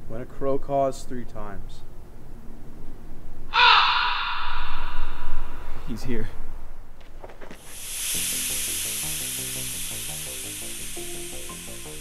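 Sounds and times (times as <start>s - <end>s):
loud steady hiss: 7.5s - 12.0s
film score with low stepped notes: 8.2s - 12.0s.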